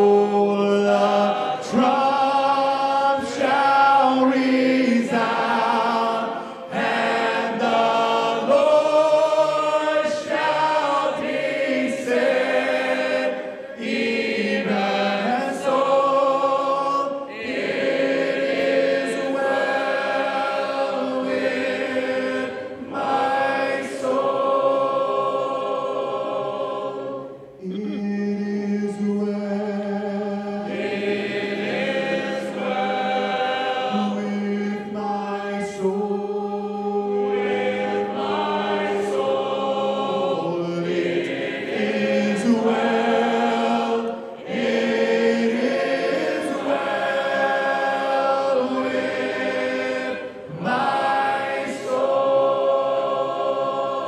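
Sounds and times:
congregation singing a hymn: 0:00.0 - 0:54.0
song leader on microphone: 0:27.6 - 0:30.8.

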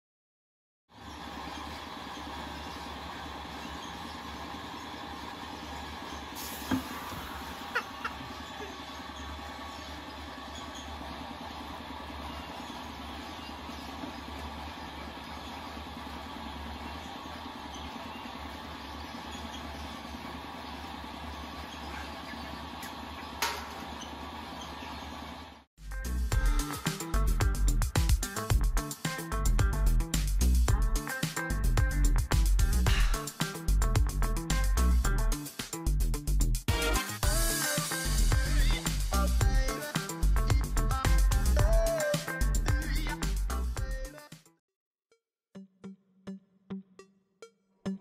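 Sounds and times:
low engine-like rumble: 0:37.2 - 0:44.0.

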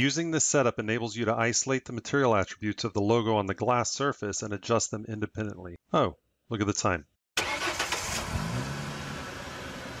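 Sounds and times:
car engine starting and running: 0:07.4 - 0:10.0.

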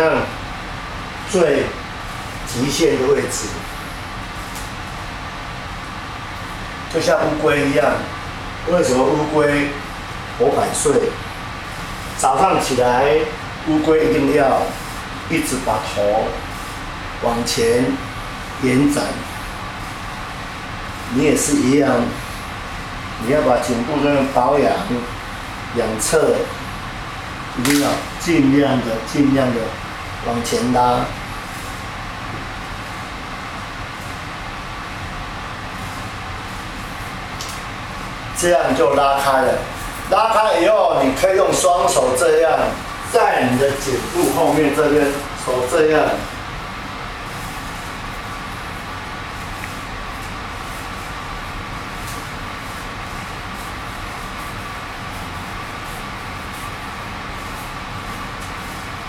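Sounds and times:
faint steady whine: 0:00.0 - 0:59.0
room background noise: 0:00.0 - 0:59.0
even hiss: 0:06.4 - 0:59.0.

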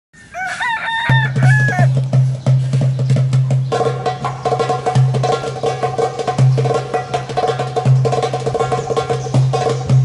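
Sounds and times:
bird crowing: 0:00.2 - 0:02.1
percussion strikes: 0:00.5 - 0:10.0.

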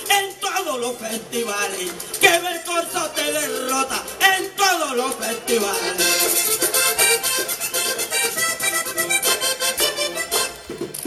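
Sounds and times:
percussion beat: 0:00.0 - 0:11.0
button accordion playing fast: 0:05.4 - 0:10.8.

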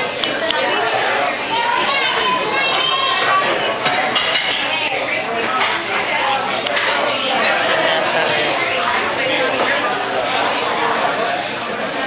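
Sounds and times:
restaurant chatter: 0:00.0 - 0:12.0
dishes and cutlery clinking: 0:03.8 - 0:05.8.

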